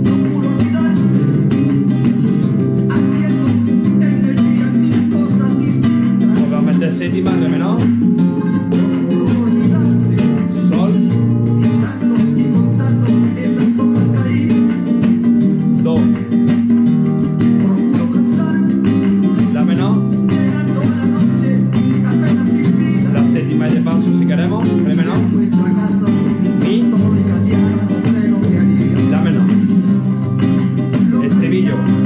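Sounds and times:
guitar strummed in latin rhythm: 0.0 - 32.0.

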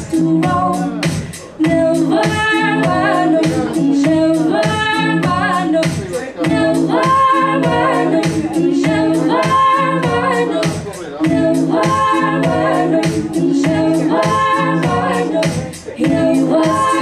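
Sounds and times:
layered vocal harmonies: 0.0 - 17.0
woman singing: 0.0 - 17.0.

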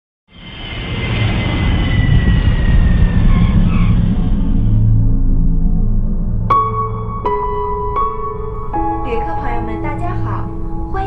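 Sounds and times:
high engine whine falling in pitch: 0.3 - 9.2
jet engines rumbling: 0.3 - 11.0.

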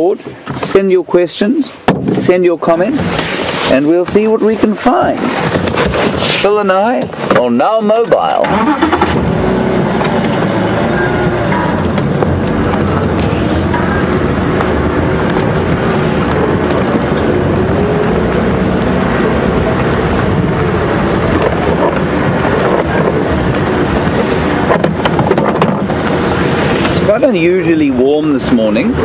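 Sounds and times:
steady rushing noise: 0.0 - 29.0
vehicle engine running: 8.3 - 29.0.

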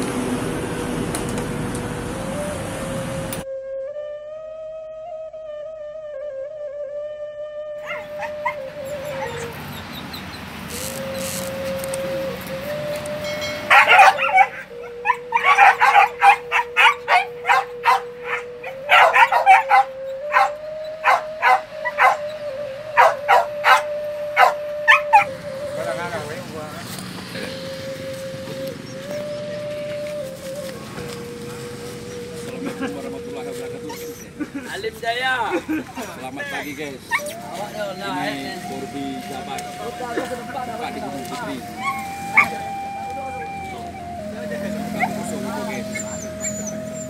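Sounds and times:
dogs barking: 7.8 - 10.2, 13.6 - 25.4, 41.8 - 42.6
background music: 11.0 - 35.0, 36.4 - 47.0.

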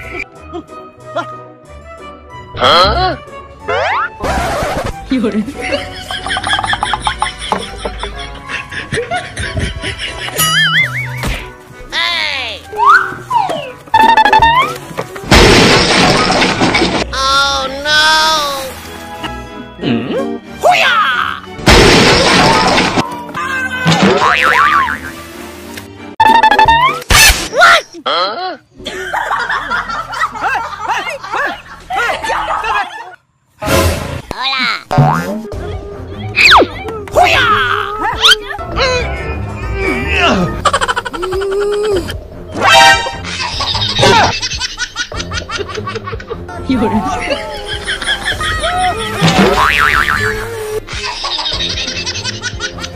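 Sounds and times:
background music: 0.0 - 52.9
cartoon whack: 34.9 - 35.5
cartoon wobbling warble: 34.9 - 35.5.

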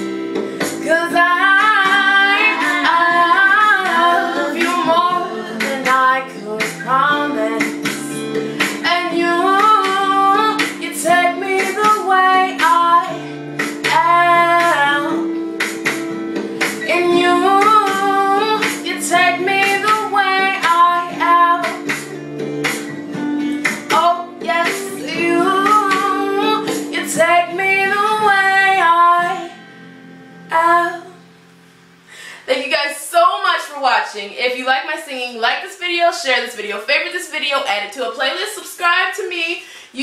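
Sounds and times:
young woman singing pop song: 0.0 - 29.8, 30.4 - 31.3, 32.2 - 40.0
plucked guitar: 0.0 - 31.5.

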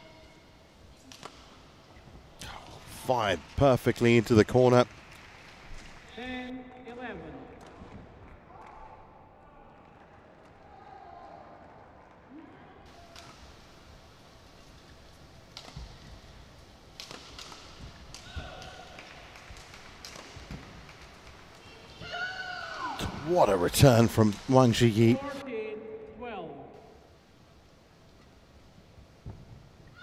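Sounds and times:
racket striking shuttlecock: 16.9 - 21.0.

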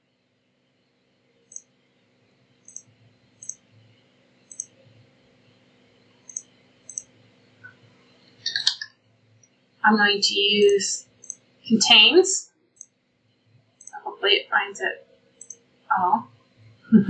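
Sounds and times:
faint steady hum: 0.0 - 17.0
computer mouse clicking: 4.5 - 4.7, 6.3 - 7.1, 11.2 - 11.4.

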